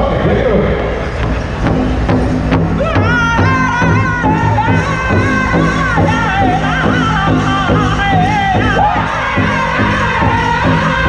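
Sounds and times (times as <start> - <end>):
crowd chatter: 0.0 - 11.0
large drum strikes: 1.2 - 11.0.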